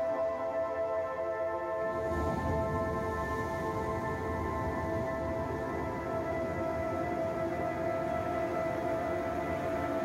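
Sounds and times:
slow ambient music: 0.0s - 10.0s.

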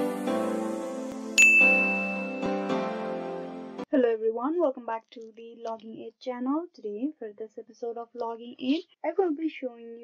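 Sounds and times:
background intro music: 0.0s - 3.9s
bright bell ding: 1.4s - 2.7s.

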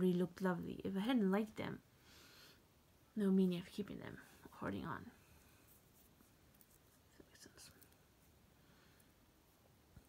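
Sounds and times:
soft clicks and rustles: 5.2s - 10.0s.

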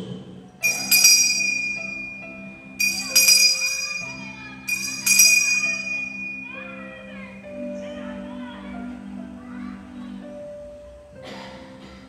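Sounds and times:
altar bell ringing: 0.6s - 7.4s.

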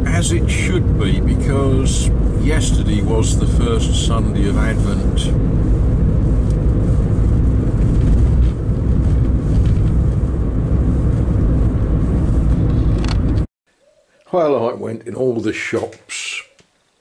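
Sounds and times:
car engine and tyres rumble: 0.0s - 13.5s.

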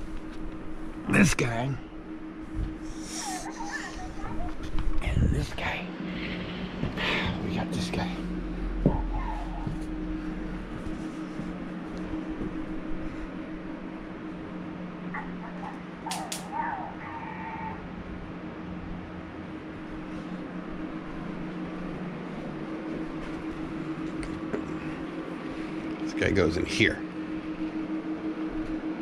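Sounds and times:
low room hum: 0.0s - 29.0s
fox whining: 2.9s - 4.8s, 8.7s - 10.0s, 15.1s - 17.9s.

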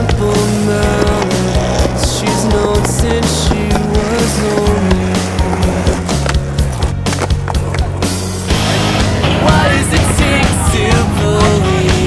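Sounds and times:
skateboard wheels rolling on asphalt: 0.0s - 11.6s
rock song: 0.0s - 12.0s.

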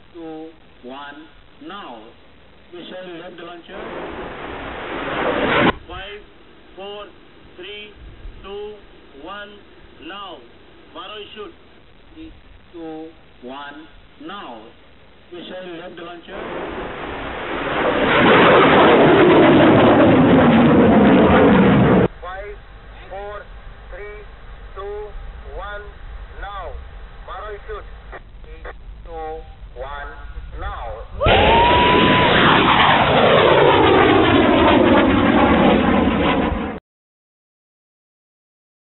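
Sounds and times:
rocket motor roaring: 16.3s - 36.8s.

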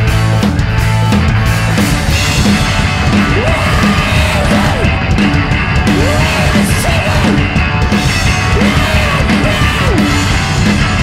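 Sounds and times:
distorted electric guitar: 0.0s - 11.0s
drum kit: 0.0s - 11.0s
electric bass: 0.0s - 11.0s
person yelling vocal: 3.3s - 4.9s.

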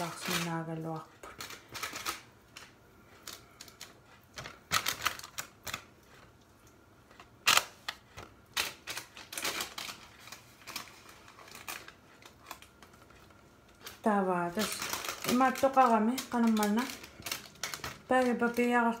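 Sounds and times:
baking paper crackling: 0.0s - 19.0s.

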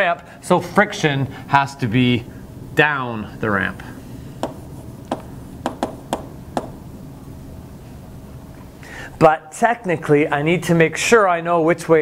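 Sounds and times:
chalk tapping on a chalkboard: 4.4s - 6.8s.

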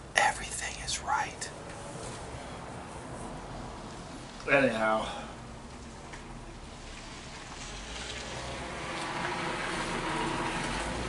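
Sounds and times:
road vehicle passing: 1.4s - 11.0s.

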